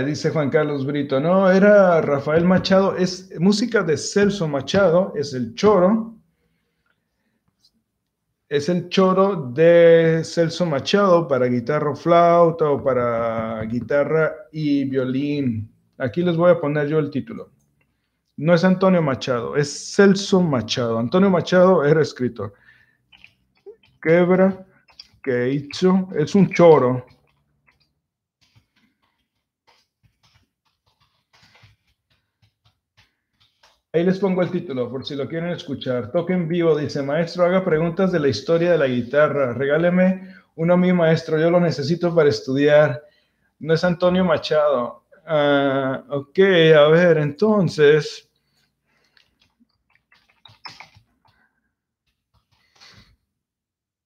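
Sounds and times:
computer keyboard typing: 0:23.1 - 0:33.9, 0:49.0 - 0:51.4.

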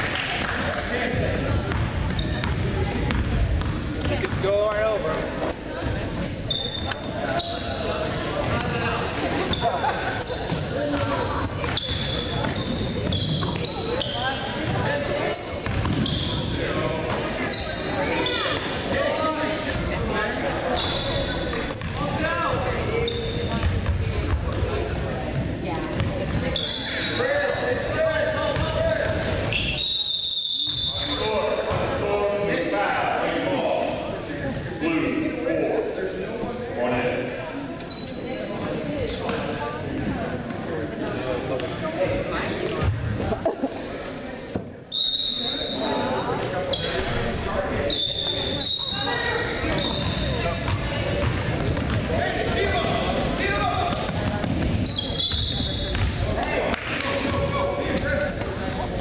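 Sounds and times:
voices in large hall: 0:00.0 - 0:59.0
sneaker squeaks: 0:00.4 - 0:32.2, 0:37.7 - 0:43.9, 0:44.5 - 0:59.0
referee's whistle: 0:29.5 - 0:31.2, 0:44.9 - 0:45.8.

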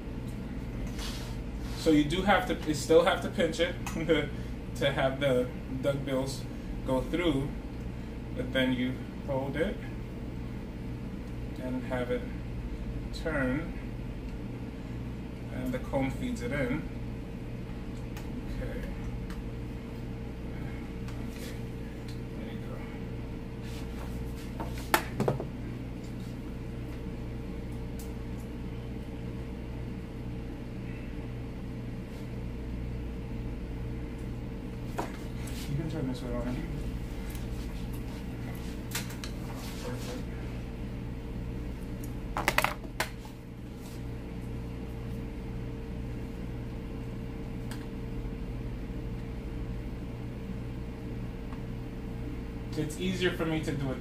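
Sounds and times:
steady electrical hum: 0:00.0 - 0:54.0.

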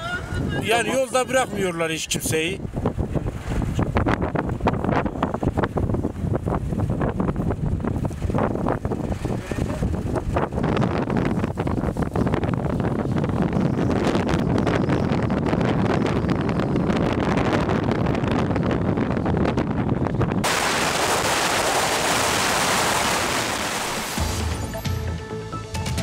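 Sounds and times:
blizzard wind buffeting microphone: 0:00.0 - 0:24.2.

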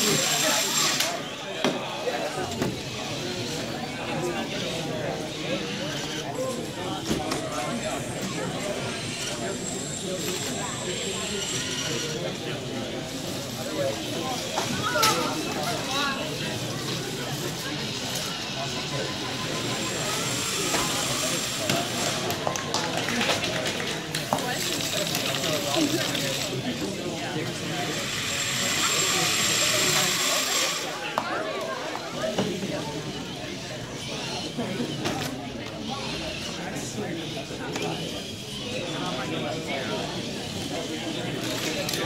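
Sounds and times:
crowd chatter: 0:00.0 - 0:42.0
spectators talking: 0:00.0 - 0:42.0
whine of electric drive motors: 0:02.2 - 0:22.4, 0:25.0 - 0:42.0.

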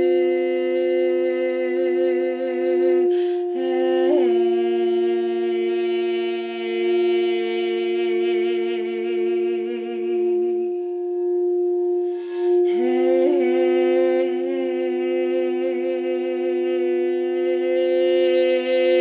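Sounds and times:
woman singing wordless note: 0:00.0 - 0:10.8, 0:12.2 - 0:19.0
crystal singing bowl ringing: 0:00.0 - 0:19.0.

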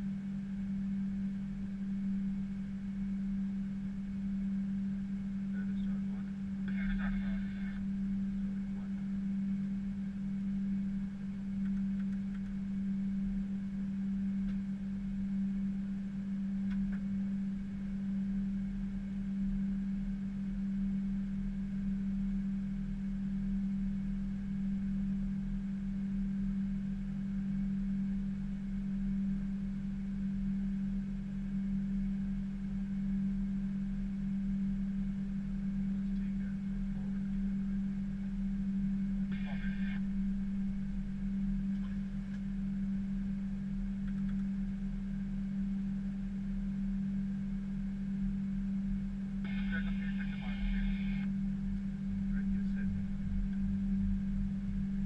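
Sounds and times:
faint low rumble: 0:00.0 - 0:55.0
steady low cockpit hum: 0:00.0 - 0:55.0.

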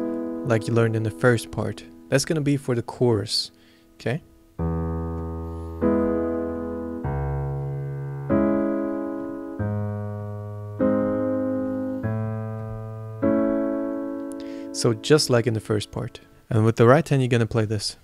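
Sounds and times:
piano bass notes and chords: 0:00.0 - 0:03.3, 0:04.2 - 0:16.4.

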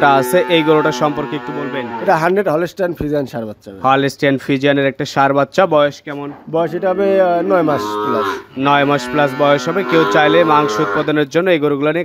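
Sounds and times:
cattle mooing: 0:00.0 - 0:02.2, 0:06.9 - 0:11.2.

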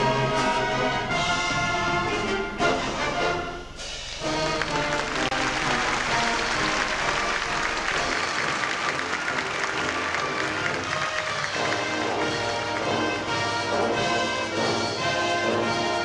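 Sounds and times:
concert band playing: 0:00.0 - 0:16.0
audience applause: 0:04.2 - 0:14.2.

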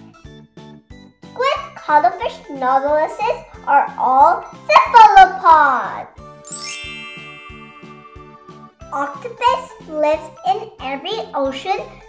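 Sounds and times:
light background music with beat: 0:06.2 - 0:08.9
twinkling sparkle chime: 0:06.5 - 0:08.8.

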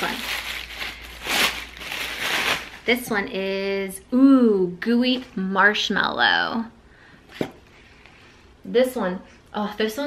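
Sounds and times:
tissue paper crinkling: 0:00.0 - 0:03.4.

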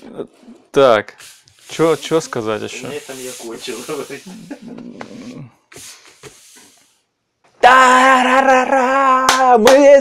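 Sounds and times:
soft rubbing and brushing: 0:01.2 - 0:07.0.

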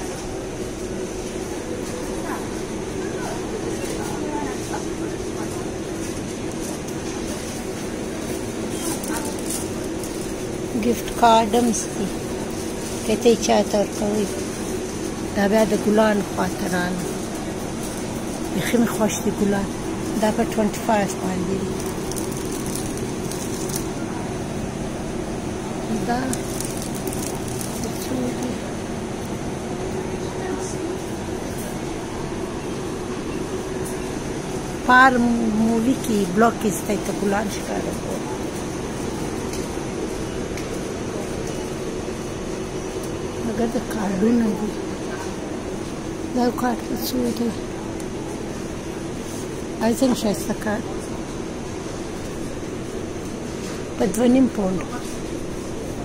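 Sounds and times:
faint voices of shoppers: 0:00.0 - 0:56.0
steady mechanical hum: 0:00.0 - 0:56.0.

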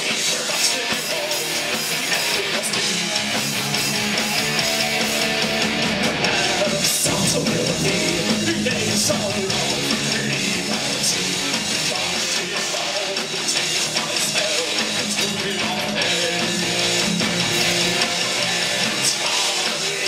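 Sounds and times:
heavy metal band playing live: 0:00.0 - 0:20.0.

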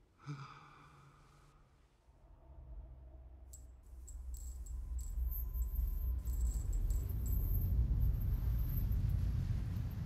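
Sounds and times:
man sighing: 0:00.2 - 0:01.0.

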